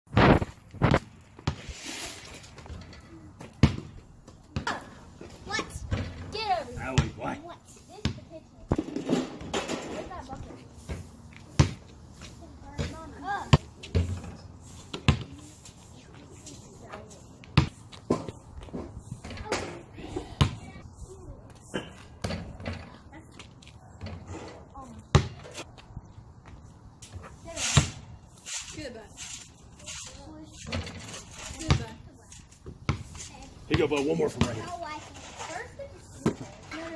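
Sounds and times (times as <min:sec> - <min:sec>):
basketball bouncing on asphalt: 0:01.0 - 0:01.7, 0:03.4 - 0:04.8, 0:06.8 - 0:07.4, 0:08.0 - 0:09.7, 0:10.9 - 0:14.3, 0:14.9 - 0:15.5, 0:16.9 - 0:19.0, 0:20.4 - 0:20.8, 0:24.9 - 0:28.2, 0:31.6 - 0:34.8, 0:36.1 - 0:36.6.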